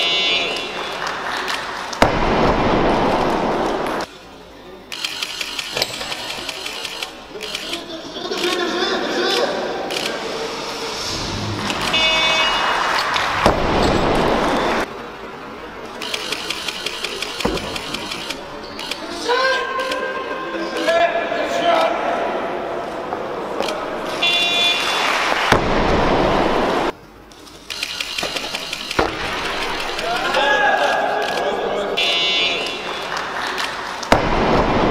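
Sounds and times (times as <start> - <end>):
competition hall noise: 0.0 - 27.3, 28.3 - 34.9
short electronic tone: 11.6 - 12.8.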